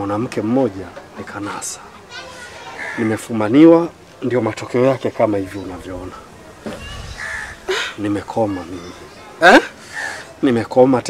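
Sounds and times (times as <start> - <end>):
harsh bird caws: 2.4 - 3.2, 6.7 - 9.0, 9.8 - 10.4
man speaking: 3.0 - 6.3, 7.7 - 9.7.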